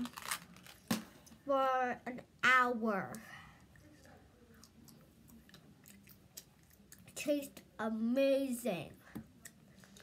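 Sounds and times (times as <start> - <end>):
chewing gum mouth clicks: 4.6 - 7.1.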